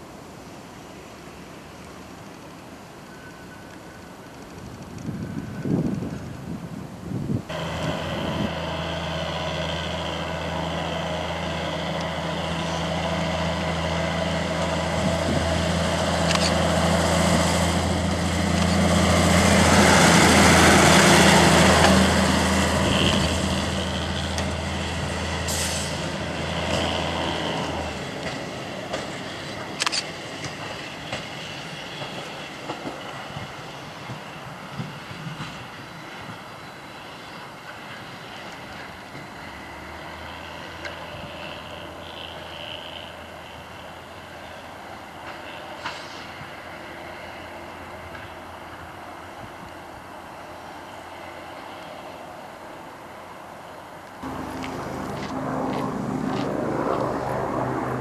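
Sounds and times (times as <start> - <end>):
diesel railbus engine drone: 0.0 - 58.0
sharp clicks of train rolling: 14.4 - 25.0, 25.9 - 39.5, 45.1 - 48.9.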